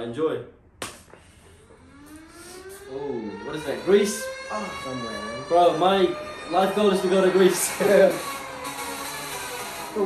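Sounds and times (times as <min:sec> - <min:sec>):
sustained tone rising in pitch: 0:01.7 - 0:10.0.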